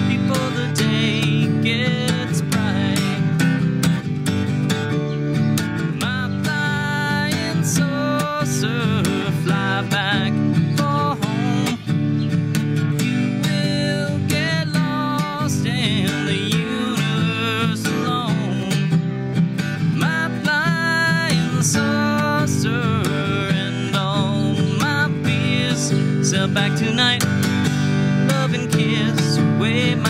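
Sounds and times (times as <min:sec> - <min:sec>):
acoustic guitar strumming: 0:00.0 - 0:30.0.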